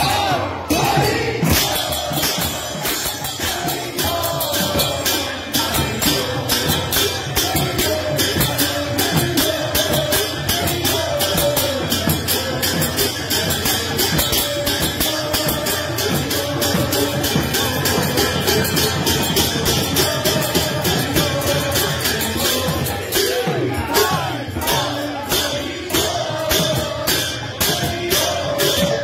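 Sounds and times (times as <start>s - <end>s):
group singing devotional chant: 0.0s - 29.0s
small hand cymbals: 1.4s - 29.0s.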